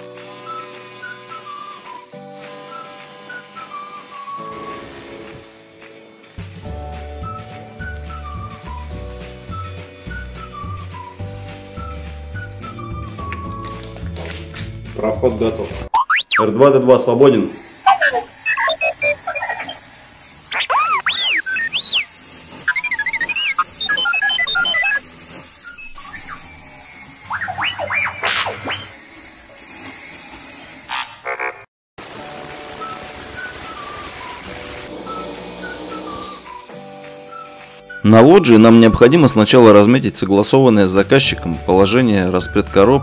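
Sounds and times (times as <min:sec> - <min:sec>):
robot beeps and whistles: 0:15.9 - 0:16.5, 0:17.9 - 0:19.8, 0:20.5 - 0:22.1, 0:22.7 - 0:25.0, 0:25.6 - 0:26.6, 0:27.3 - 0:29.0
warbling chirps: 0:15.9 - 0:16.5, 0:17.9 - 0:19.8, 0:20.5 - 0:22.1, 0:22.7 - 0:25.0, 0:27.2 - 0:29.0.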